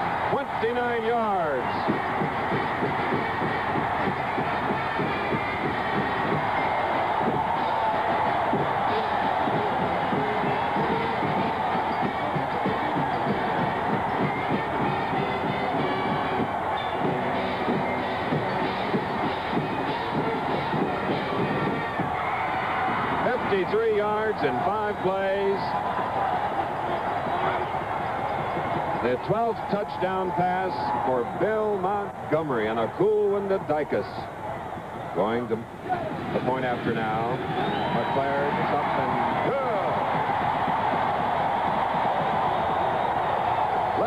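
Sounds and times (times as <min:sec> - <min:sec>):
band playing: 0:00.0 - 0:22.2
stadium crowd cheering: 0:00.0 - 0:44.0.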